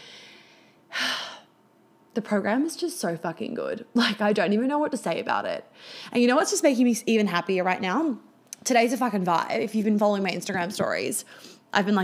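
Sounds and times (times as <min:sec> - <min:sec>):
woman breathing out: 0:00.0 - 0:01.5, 0:05.8 - 0:06.1.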